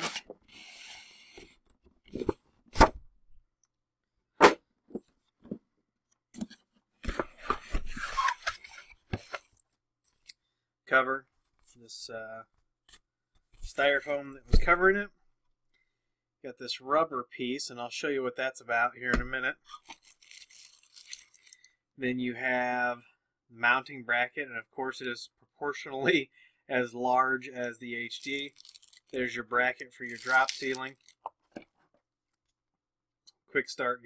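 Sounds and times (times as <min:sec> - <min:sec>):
packaging rustling in cardboard box: 0:28.2 - 0:29.2
packing foam rustling and scraping: 0:30.0 - 0:31.1.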